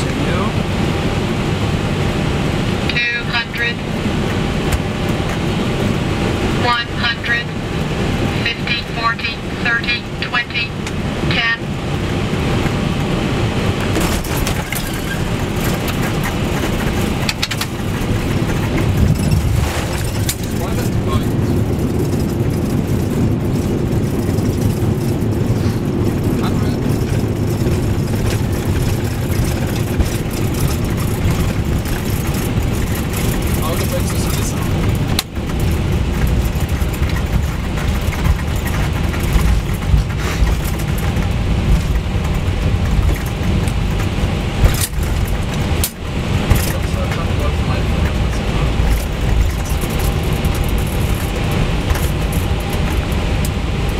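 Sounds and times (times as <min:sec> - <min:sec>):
aircraft landing roll rumble: 0:00.0 - 0:53.9.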